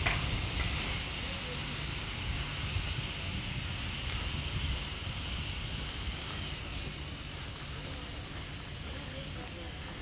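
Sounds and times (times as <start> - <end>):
high hiss: 0.0 - 10.0.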